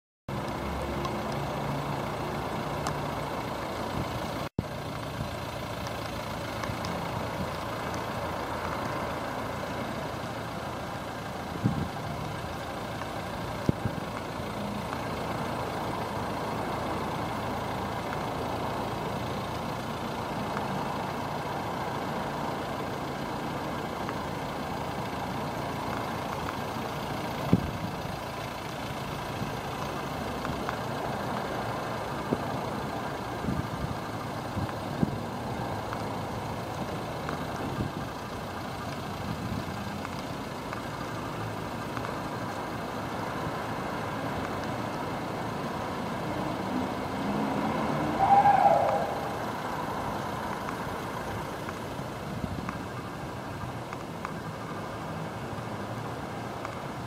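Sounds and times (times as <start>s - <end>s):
diesel engine idling: 0.3s - 57.0s
sharp clicks: 5.7s - 10.1s, 34.0s - 46.3s, 48.2s - 54.9s, 56.4s - 57.0s.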